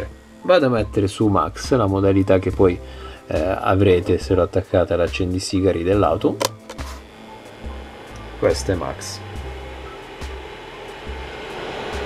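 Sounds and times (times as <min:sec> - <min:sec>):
cooler fan whirring: 0:00.0 - 0:12.0.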